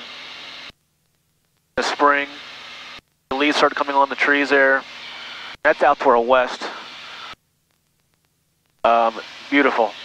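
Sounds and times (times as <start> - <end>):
aircraft engine and cabin noise: 1.8 - 7.3.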